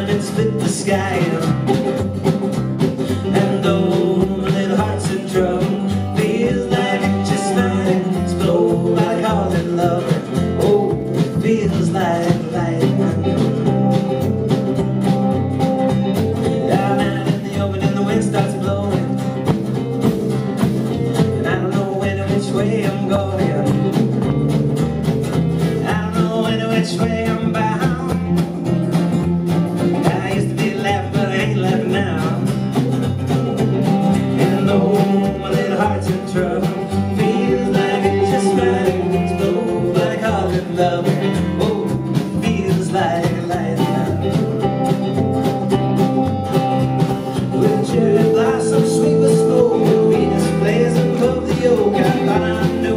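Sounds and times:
strummed acoustic guitars: 0.0s - 52.9s
upright double bass: 0.0s - 52.9s.

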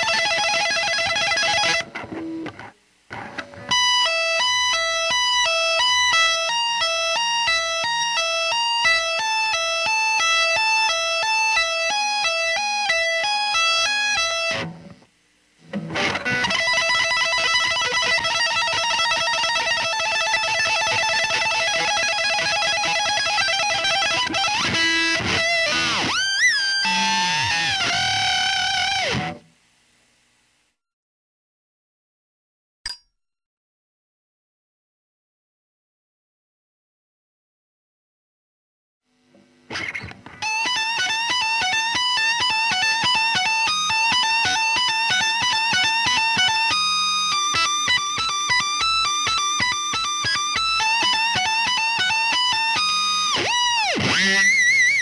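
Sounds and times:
electric guitar rapid notes: 0.0s - 14.8s, 15.7s - 29.4s, 39.7s - 55.0s.

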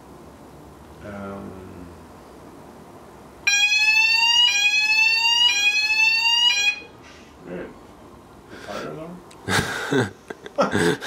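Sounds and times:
fire alarm sweeping tone: 3.5s - 7.0s.

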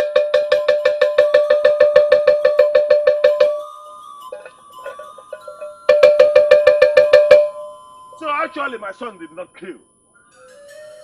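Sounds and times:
metal bell struck rapidly: 0.0s - 9.3s.

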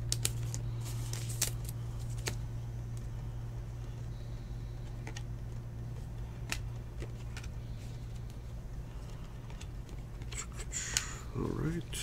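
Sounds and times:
cards clicking and snapping: 0.0s - 3.0s, 6.4s - 7.5s
steady low hum: 0.0s - 12.0s.

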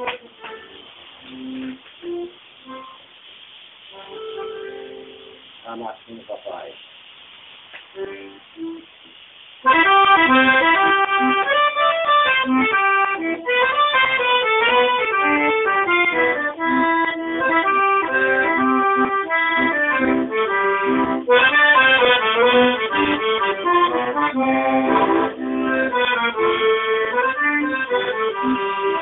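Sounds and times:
piano accordion playing a march: 0.0s - 3.0s, 3.9s - 5.4s, 9.6s - 29.0s.

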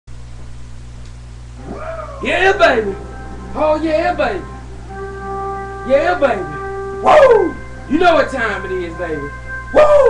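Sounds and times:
low electrical hum and hiss: 0.1s - 10.0s
man calling out: 1.6s - 4.5s, 5.8s - 10.0s.

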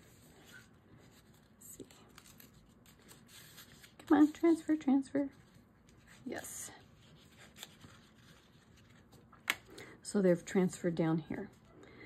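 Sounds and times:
hands rubbing paper: 0.0s - 9.2s.

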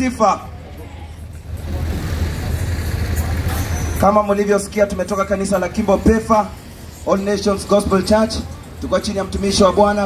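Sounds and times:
motor vehicle rumbling: 0.0s - 10.0s.

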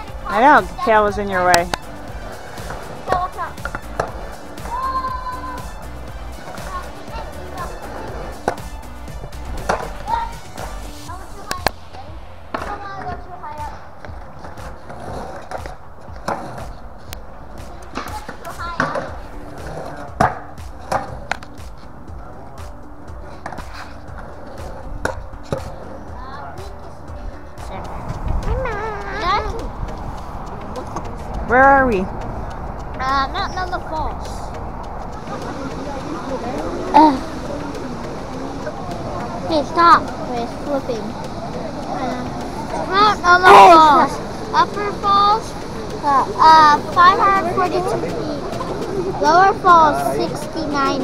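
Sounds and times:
background music: 0.0s - 51.0s
skateboards rolling on concrete: 0.0s - 51.0s
skateboard clacks on concrete: 12.5s - 22.4s, 23.2s - 26.0s.

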